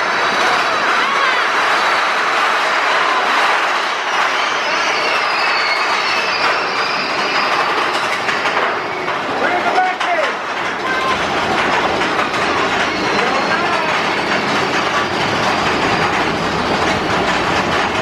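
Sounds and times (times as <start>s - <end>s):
roller coaster rattling on track: 0.0s - 18.0s.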